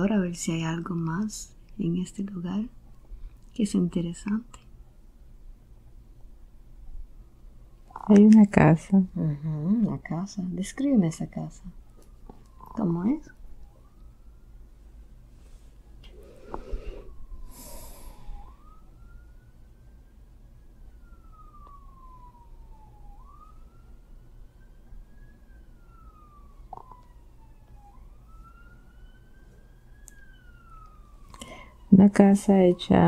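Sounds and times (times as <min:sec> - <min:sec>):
faint siren wailing: 0:00.0 - 0:33.0.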